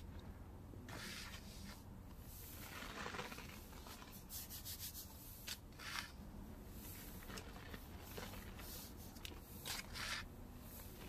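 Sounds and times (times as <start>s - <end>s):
hands rubbing gritty powder: 0.9s - 11.0s
sharp scrape in metal bowl: 4.3s - 6.2s, 9.6s - 10.3s.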